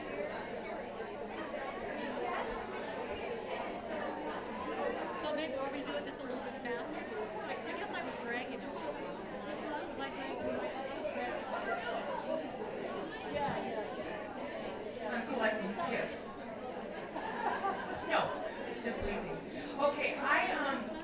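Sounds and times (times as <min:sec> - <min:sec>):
hubbub of overlapping voices: 0:00.0 - 0:21.0.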